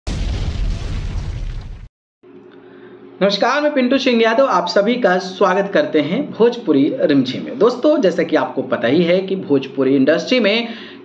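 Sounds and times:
explosion with deep rumble: 0.0s - 1.9s.

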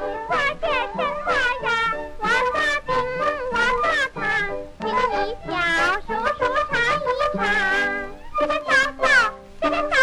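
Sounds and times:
high-pitched voice singing: 0.0s - 10.0s.

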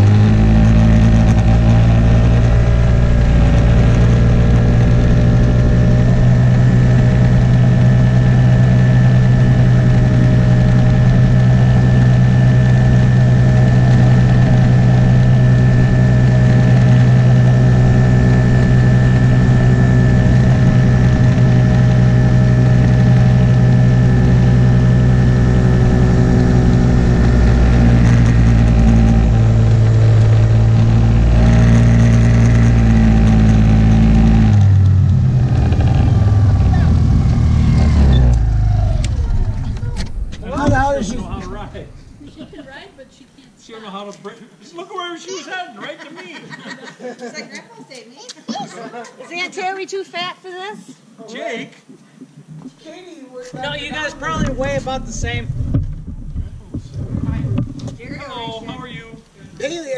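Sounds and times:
small engine running: 0.0s - 42.9s.

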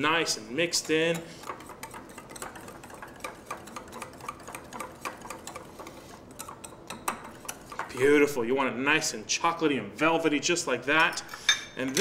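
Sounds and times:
whisk clicking against glass bowl: 0.8s - 8.2s.

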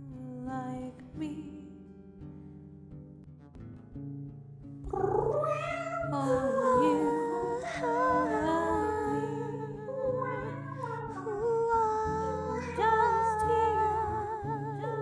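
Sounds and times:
woman singing wordless soprano: 0.0s - 1.9s, 4.9s - 15.0s.

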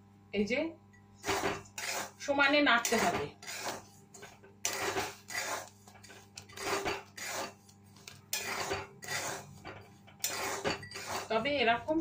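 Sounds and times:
metal spatula scraping steel pan: 1.2s - 7.7s, 8.3s - 11.4s.

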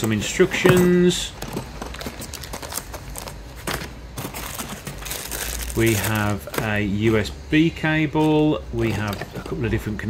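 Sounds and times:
plastic bag rustling: 1.3s - 7.3s.

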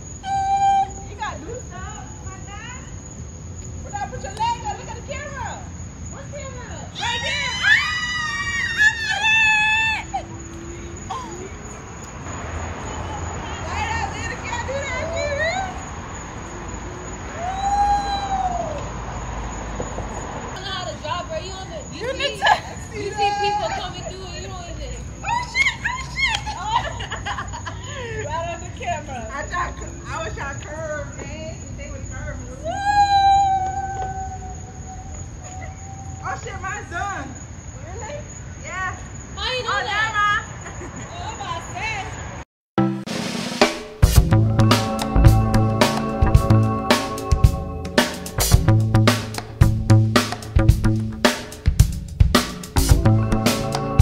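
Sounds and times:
person squealing: 7.6s - 11.6s.

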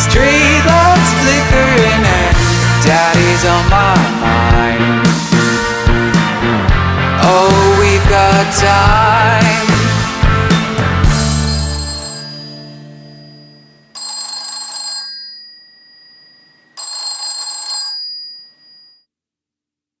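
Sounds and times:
rock band final chord: 0.0s - 12.0s
telephone bell ringing: 11.2s - 19.1s.

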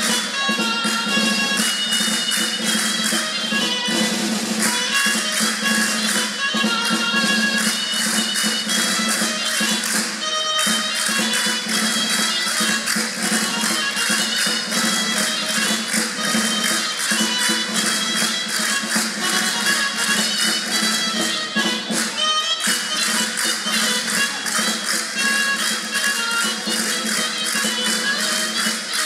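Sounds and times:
folk dance music: 0.0s - 29.0s.

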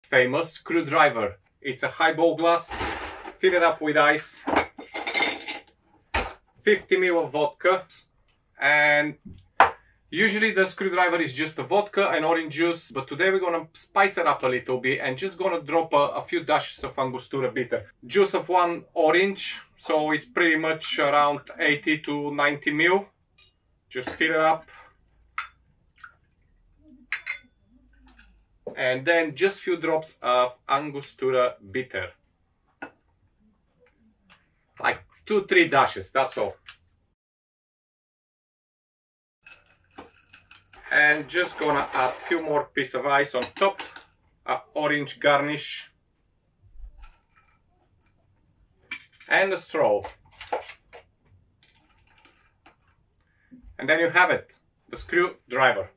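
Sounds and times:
glass clinking: 4.5s - 6.3s, 25.4s - 25.6s, 27.1s - 28.3s, 39.4s - 41.8s, 43.4s - 44.1s
metal straw clinking ice and glass: 39.4s - 42.1s.

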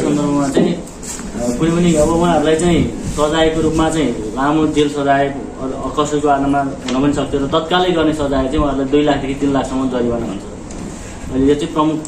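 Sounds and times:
man speaking: 0.0s - 10.6s.

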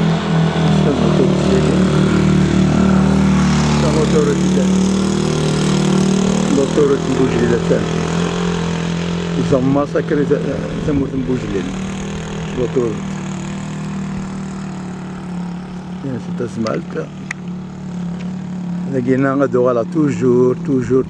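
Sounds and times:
engine idling: 0.0s - 21.0s
man talking: 0.7s - 2.0s, 3.8s - 4.9s, 6.4s - 8.0s, 9.4s - 11.8s, 12.5s - 13.1s, 16.0s - 17.2s, 18.9s - 21.0s.

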